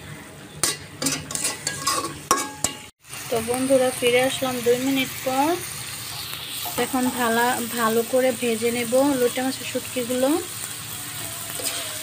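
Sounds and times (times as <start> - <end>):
metal spatula scraping a wok: 0.6 - 2.9, 5.6 - 7.9, 10.5 - 12.0
frying oil sizzling: 0.6 - 12.0.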